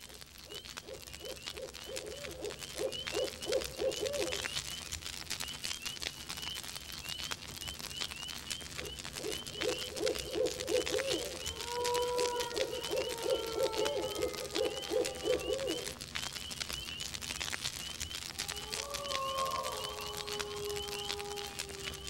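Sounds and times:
low hoots: 0.0 - 4.6, 8.6 - 16.0, 17.8 - 22.0.

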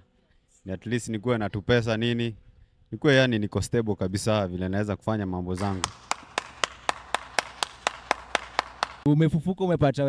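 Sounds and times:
person clapping: 5.6 - 9.1.

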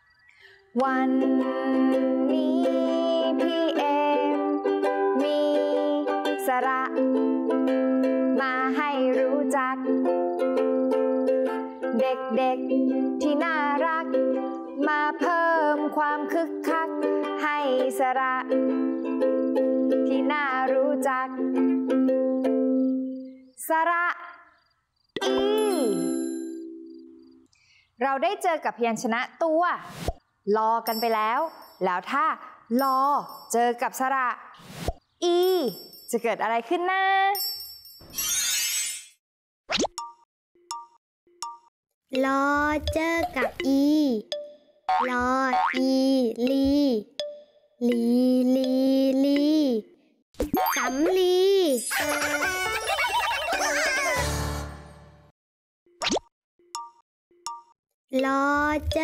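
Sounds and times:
person speaking: 25.2 - 26.2, 30.5 - 34.2, 35.2 - 37.4, 58.2 - 59.0
bright chime ding: 25.2 - 26.7
ukulele chord ringing: 25.2 - 26.9
cartoon boing: 44.9 - 45.8.

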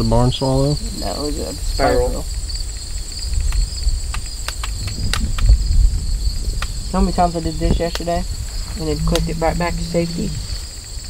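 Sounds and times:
crickets chirping: 0.0 - 11.0
low microphone rumble: 4.9 - 10.8.

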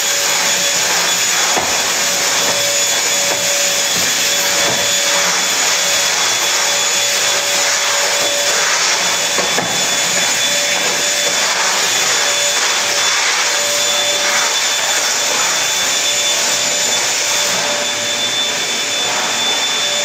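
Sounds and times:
vacuum cleaner running: 0.0 - 20.0.

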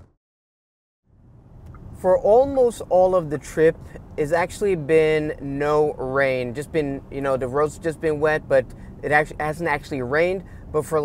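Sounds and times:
car road and tyre noise: 1.1 - 11.0.

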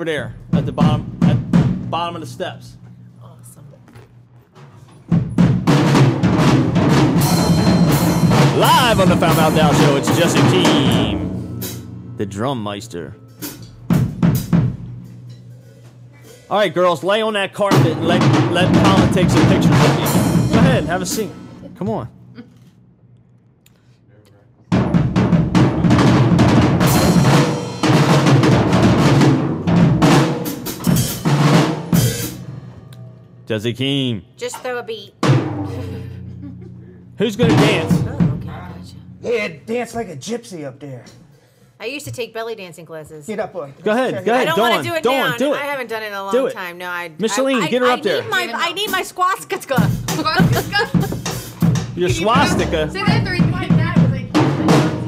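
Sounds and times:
drum kit played loudly: 0.0 - 2.4, 5.0 - 22.1, 24.7 - 33.0, 34.6 - 39.8, 44.3 - 45.4, 47.7 - 55.0.

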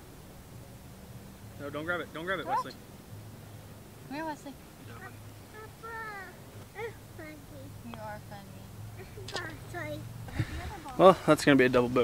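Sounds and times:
toddler babbling: 4.9 - 7.7.

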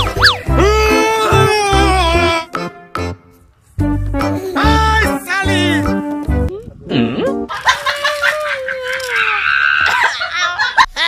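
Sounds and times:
cartoon swooping glide: 0.0 - 0.5
background music: 0.0 - 7.5.

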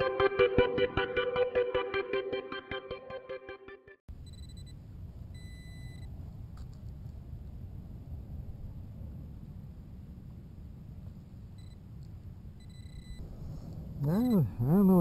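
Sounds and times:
steady low rumble: 4.1 - 15.0
metal detector beeping: 5.4 - 6.1, 12.6 - 13.2.

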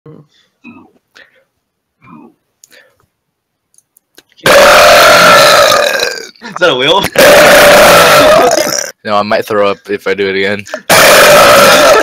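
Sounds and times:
loud burp: 4.4 - 6.4, 7.0 - 9.0, 10.9 - 12.0.

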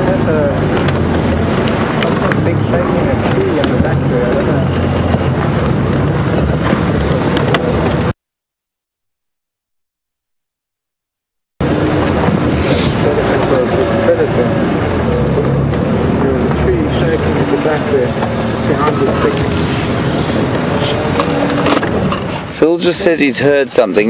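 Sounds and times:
vehicle engine running: 0.0 - 8.2.

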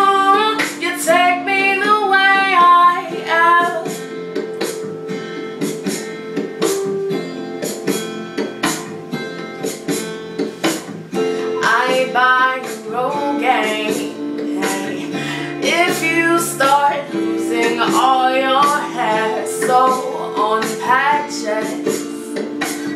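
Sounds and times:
woman singing: 0.0 - 4.0, 11.5 - 22.9
acoustic guitar strumming: 0.0 - 22.9.

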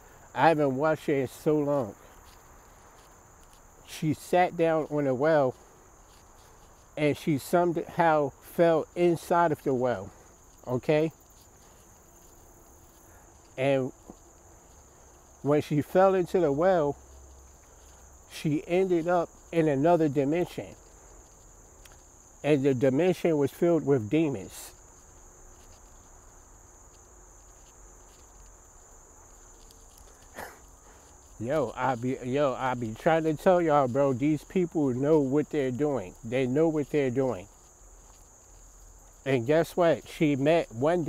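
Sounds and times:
insects trilling: 0.0 - 41.0.

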